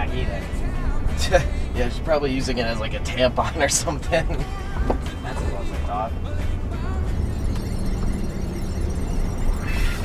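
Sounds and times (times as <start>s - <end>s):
car engine and road rumble: 0.0s - 10.0s
music on car radio: 0.0s - 10.0s.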